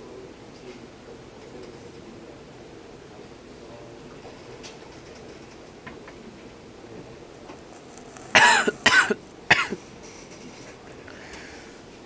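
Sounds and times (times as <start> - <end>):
person coughing loudly: 8.2 - 9.8.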